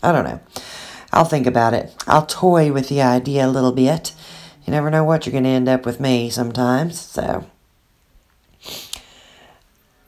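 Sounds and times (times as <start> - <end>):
person sniffing: 8.6 - 9.6.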